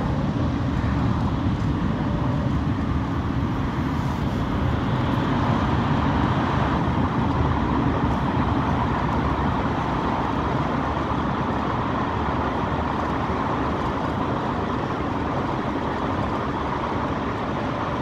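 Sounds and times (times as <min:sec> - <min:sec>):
bus engine and tyre noise: 0:00.0 - 0:18.0.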